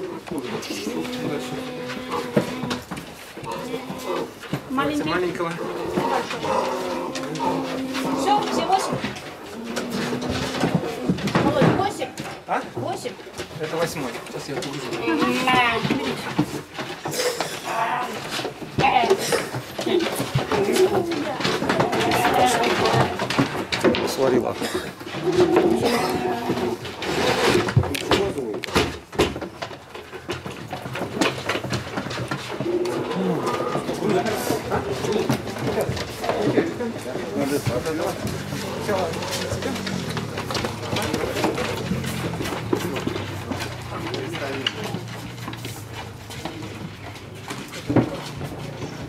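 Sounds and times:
cooing animal calls: 0:00.0 - 0:04.4, 0:05.6 - 0:11.2, 0:24.7 - 0:27.0, 0:32.5 - 0:35.5
knocks on wooden crates: 0:15.0 - 0:37.0
people talking indistinctly: 0:33.1 - 0:45.1.

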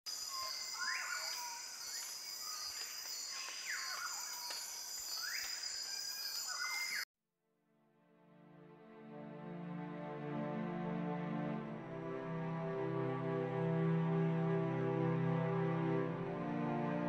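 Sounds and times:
high insect drone: 0:00.1 - 0:07.0.

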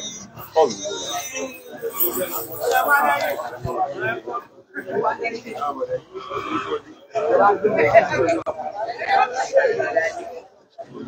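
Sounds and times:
voices talking: 0:00.0 - 0:04.1.

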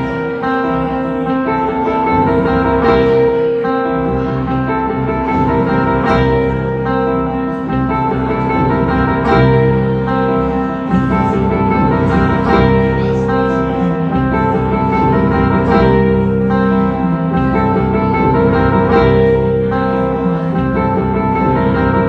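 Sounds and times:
acoustic guitar strumming: 0:00.0 - 0:22.0.

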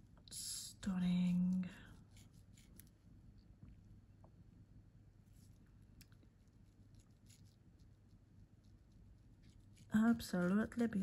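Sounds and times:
faint ticks and rustles: 0:00.2 - 0:04.4, 0:05.3 - 0:11.0.

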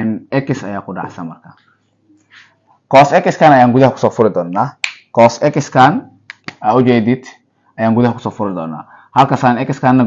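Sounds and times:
man speaking: 0:00.0 - 0:01.6, 0:02.9 - 0:10.0.

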